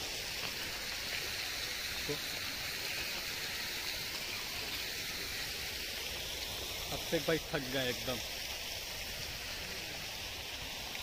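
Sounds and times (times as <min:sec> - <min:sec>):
steady hissing noise: 0:00.0 - 0:11.0.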